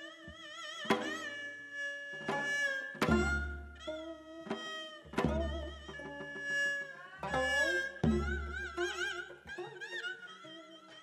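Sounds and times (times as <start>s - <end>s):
bowed string melody: 0.0s - 10.8s.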